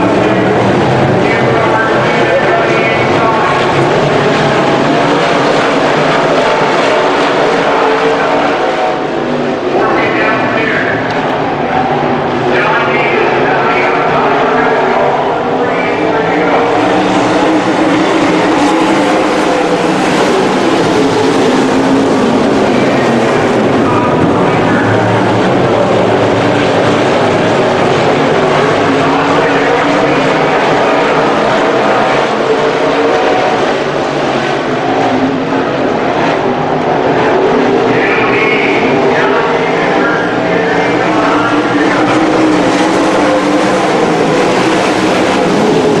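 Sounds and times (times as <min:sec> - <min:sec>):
race car engines running hard: 0:00.0 - 0:46.0.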